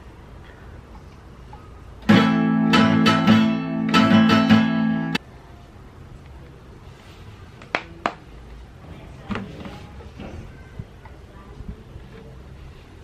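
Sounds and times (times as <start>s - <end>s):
acoustic guitar strumming: 2.0s - 5.2s.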